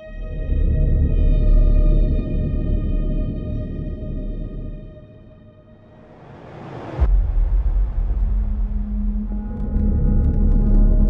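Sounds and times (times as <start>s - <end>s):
dark ambient drone music: 0.0s - 11.0s.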